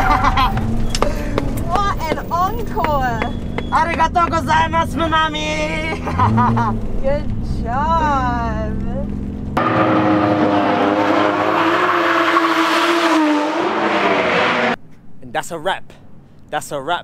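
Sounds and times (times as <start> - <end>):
tyres screeching: 0.0 - 6.8, 9.1 - 14.8
car engine revving: 0.0 - 14.8.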